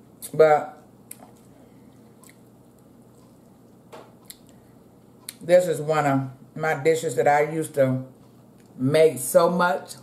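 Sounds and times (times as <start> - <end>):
faint chewing: 1.0 - 5.4.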